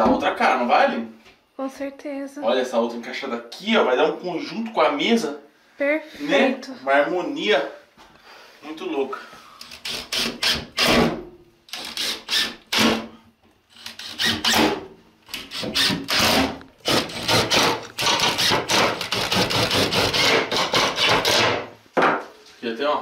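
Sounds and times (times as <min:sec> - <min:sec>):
cordless drill driving screws: 0:11.7 - 0:13.1, 0:13.7 - 0:21.5.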